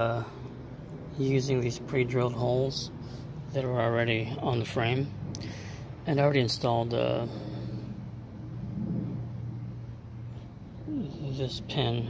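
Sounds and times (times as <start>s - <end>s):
low uneven rumble: 0.0s - 12.0s
steady low hum: 0.0s - 12.0s.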